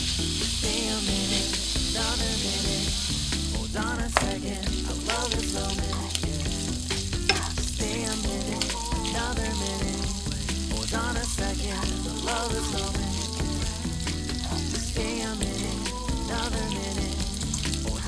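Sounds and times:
meat sizzling in oil: 0:00.0 - 0:18.0
pop song with bass line: 0:00.0 - 0:18.0
chopsticks stirring in pan: 0:00.1 - 0:18.0.

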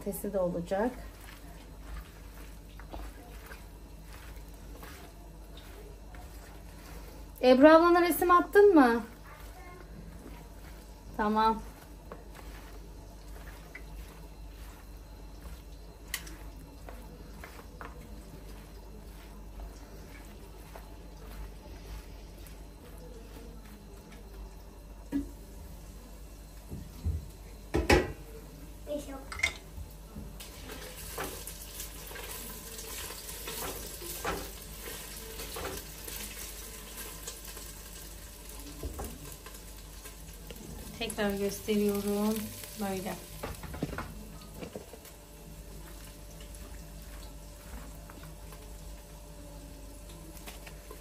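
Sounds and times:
vegetables stirred in metal tray: 0:00.0 - 0:26.7, 0:30.3 - 0:51.0.

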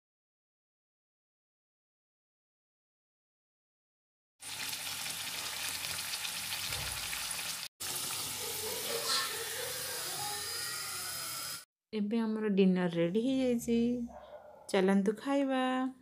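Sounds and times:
food sizzling in hot oil: 0:04.4 - 0:11.6.

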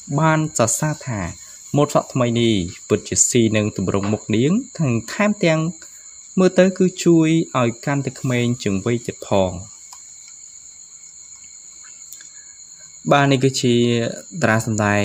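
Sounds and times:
high-pitched cricket-like whine: 0:00.0 - 0:15.0
person narrating: 0:00.1 - 0:05.8, 0:06.4 - 0:09.7, 0:13.1 - 0:15.0.

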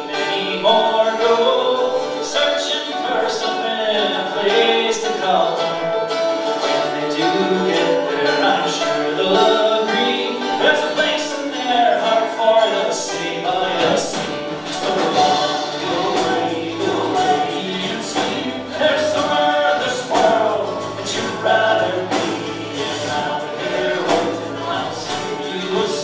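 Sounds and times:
live rock band playing: 0:00.0 - 0:26.0
sung vocals: 0:00.0 - 0:26.0
drum and cymbal strokes: 0:13.1 - 0:26.0.

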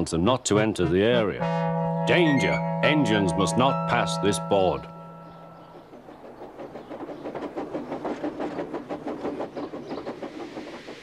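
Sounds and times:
held music note: 0:01.4 - 0:06.0
wheel clatter: 0:05.2 - 0:11.0
steam engine puffing: 0:05.8 - 0:11.0.

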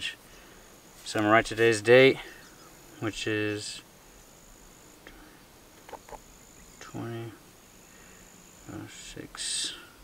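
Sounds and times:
insect trilling: 0:04.0 - 0:09.6.

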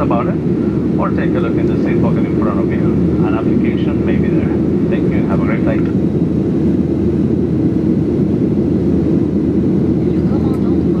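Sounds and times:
jet engine roar in cabin: 0:00.0 - 0:11.0.

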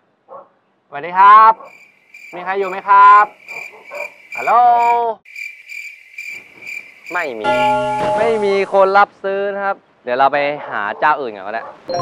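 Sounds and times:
man calling out: 0:01.0 - 0:01.7, 0:02.4 - 0:03.4, 0:04.4 - 0:05.2
cricket chirping: 0:01.6 - 0:08.6.

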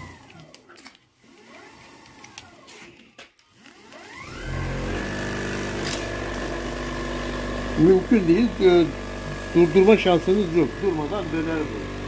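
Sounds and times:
electric motor whine: 0:00.0 - 0:12.0.

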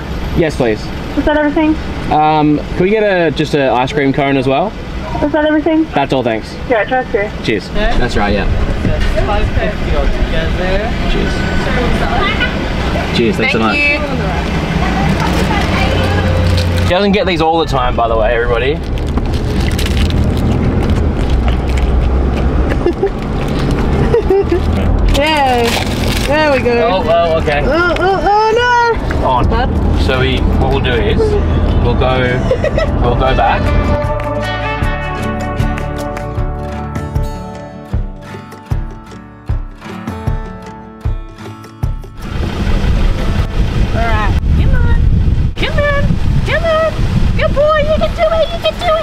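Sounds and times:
car cabin engine and road rumble: 0:00.0 - 0:34.3, 0:42.2 - 0:49.0
wind buffeting microphone: 0:07.8 - 0:34.1, 0:42.2 - 0:49.0.

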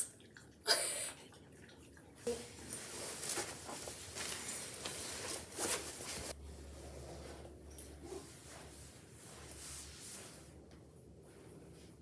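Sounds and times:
fabric rustling: 0:02.6 - 0:10.6.

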